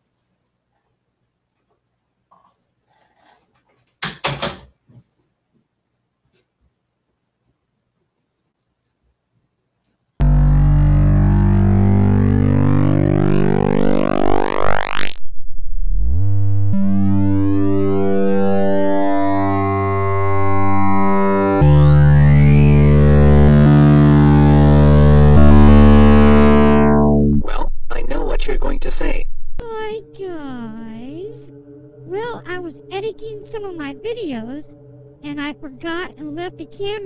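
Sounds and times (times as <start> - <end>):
buzzy synthesized drones: 10.2 - 29.3
synth sweeps: 10.2 - 29.3
high gliding tones: 10.2 - 36.8.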